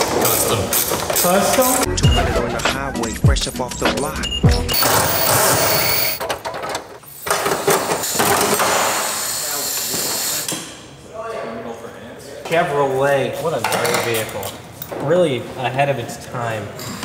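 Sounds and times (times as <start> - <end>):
music: 1.2 - 6.2
scraping and rattling of plastic and metal: 4.8 - 8.7.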